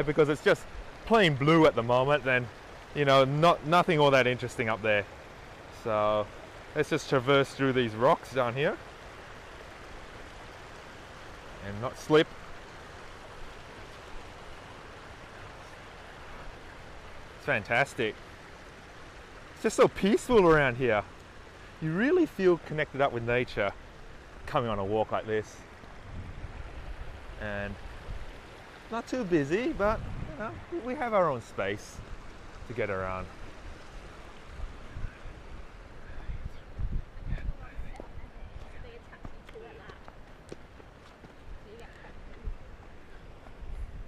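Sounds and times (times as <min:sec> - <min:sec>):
faint steady hiss: 0:00.0 - 0:44.0
stream rushing over rocks: 0:00.0 - 0:44.0
wind buffeting microphone: 0:26.0 - 0:28.4, 0:29.6 - 0:30.9, 0:33.3 - 0:40.5, 0:41.3 - 0:44.0.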